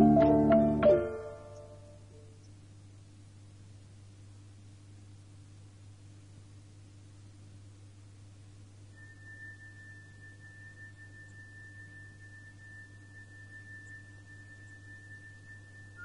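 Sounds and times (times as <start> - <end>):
high steady pure tone: 0.0 - 3.2, 8.1 - 16.0
constant low hum: 0.0 - 16.0.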